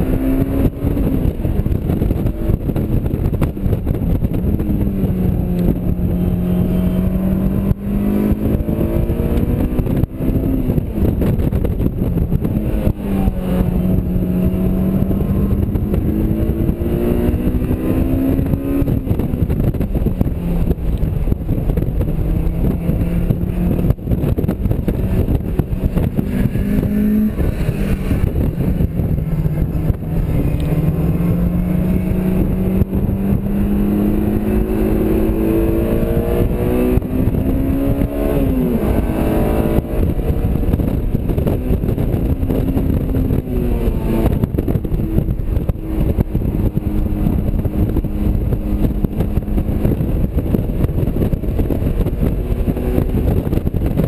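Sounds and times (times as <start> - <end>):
car engine revving through gears: 0.0 - 54.0
road noise: 0.0 - 54.0
wind noise: 0.0 - 54.0.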